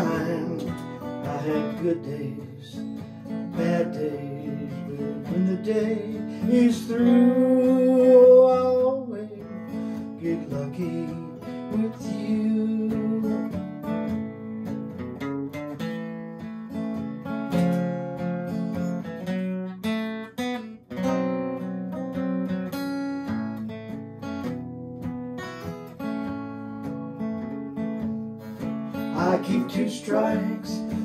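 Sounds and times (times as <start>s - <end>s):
acoustic guitar strumming: 0.0s - 31.0s.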